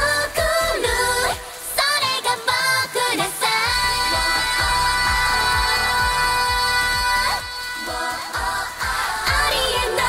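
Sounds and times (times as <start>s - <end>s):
kick drum beats: 3.7s - 10.0s.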